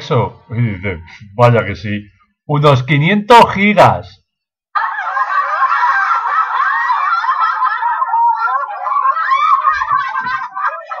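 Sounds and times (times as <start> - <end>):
canned laughter: 4.8 - 11.0.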